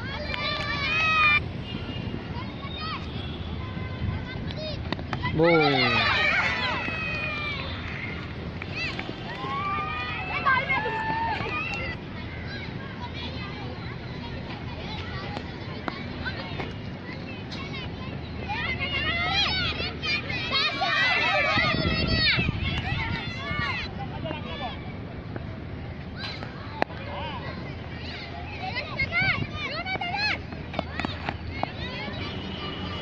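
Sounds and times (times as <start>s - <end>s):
children calling out: 4.6s - 13.4s, 17.5s - 23.9s.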